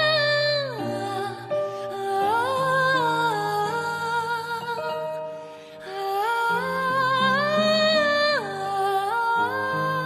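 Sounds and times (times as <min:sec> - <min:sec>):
grand piano accompaniment: 0:00.0 - 0:10.0.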